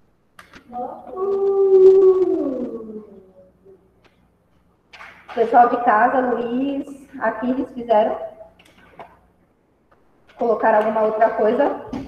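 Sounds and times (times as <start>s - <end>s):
long howl: 0.8s - 3.5s.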